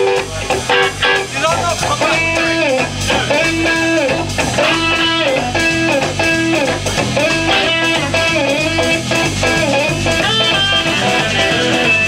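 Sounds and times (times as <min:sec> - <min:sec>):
bass guitar: 0:00.0 - 0:12.0
drums: 0:00.0 - 0:12.0
electric guitar riff: 0:00.0 - 0:12.0.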